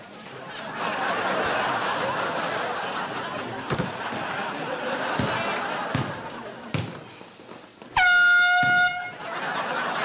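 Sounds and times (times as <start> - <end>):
scoreboard buzzer horn: 8.0 - 9.2.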